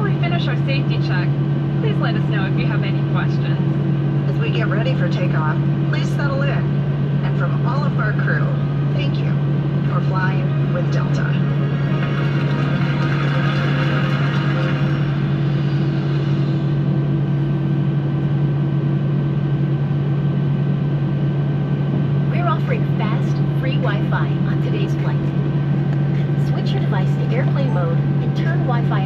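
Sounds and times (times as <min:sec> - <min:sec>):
faint announcement voice: 0:00.0 - 0:16.8, 0:22.2 - 0:29.0
jet engines idling hum: 0:00.0 - 0:29.0.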